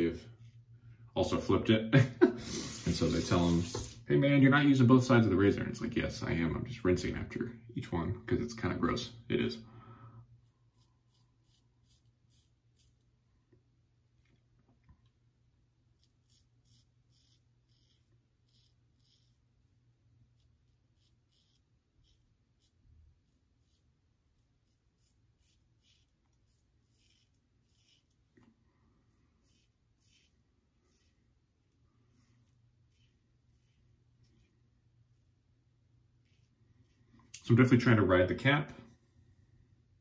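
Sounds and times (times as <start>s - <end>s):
razor scraping stubble: 0.0s - 0.7s, 10.3s - 13.1s, 15.9s - 37.5s
low room hum: 0.0s - 40.0s.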